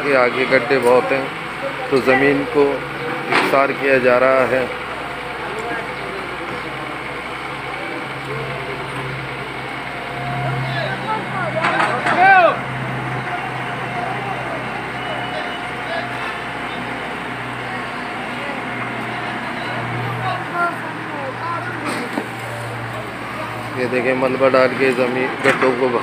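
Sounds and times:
excavator diesel engine running: 0.0 - 26.0.

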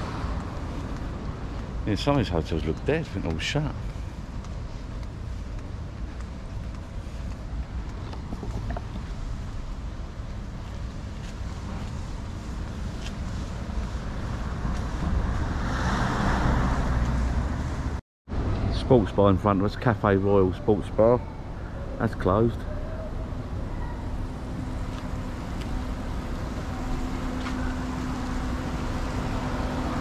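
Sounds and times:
wind rumbling on microphone: 0.0 - 18.8
street traffic noise: 0.0 - 30.0
vehicle passing: 11.7 - 18.0.

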